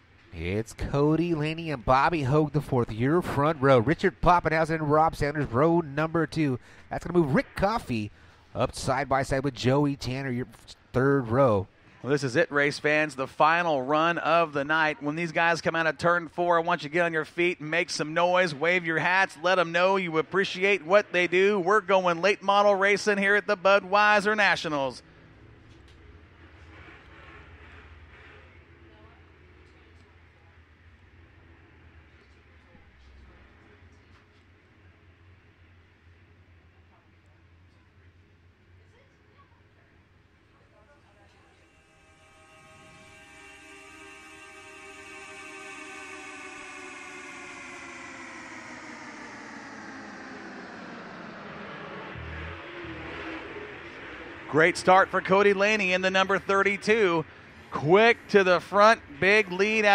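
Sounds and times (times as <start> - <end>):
race cars rumbling: 47.6 - 59.9.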